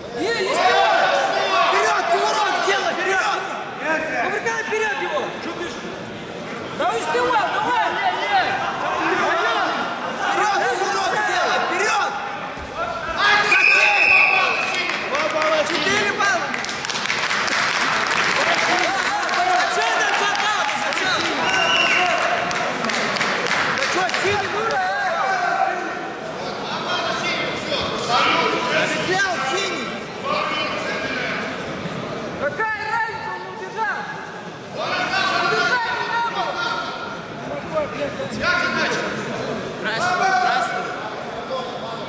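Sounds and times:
voices shouting in hall: 0.0s - 3.8s, 6.9s - 15.2s
people shouting in echoing hall: 0.0s - 5.2s.

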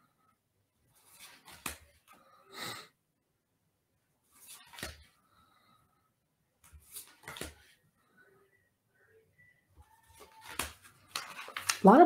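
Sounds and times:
cards swishing and tapping: 0.9s - 2.2s, 4.3s - 5.2s, 6.6s - 7.8s, 9.9s - 12.0s.

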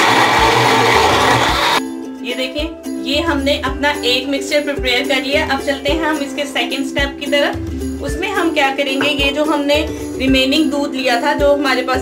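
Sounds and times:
blender crushing ice: 0.0s - 1.8s
background music with beat: 0.0s - 12.0s.

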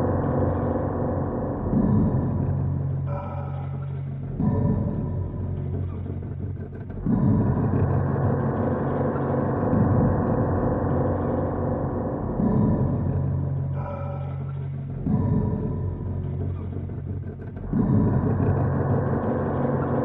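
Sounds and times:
dark ambient droning music: 0.0s - 20.0s.

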